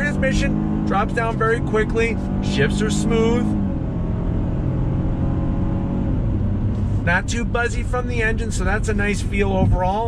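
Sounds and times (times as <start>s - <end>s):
car engine pulling under throttle: 0.0s - 10.0s
tyre and road noise: 0.0s - 10.0s.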